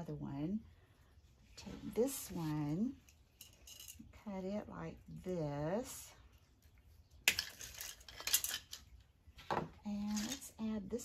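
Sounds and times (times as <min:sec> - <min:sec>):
plastic sprigs rustling: 0:06.4 - 0:10.6.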